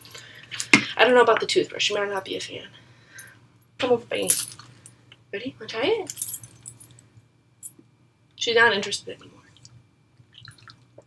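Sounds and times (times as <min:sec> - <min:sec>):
dog collar tags jingling: 0:06.1 - 0:07.0.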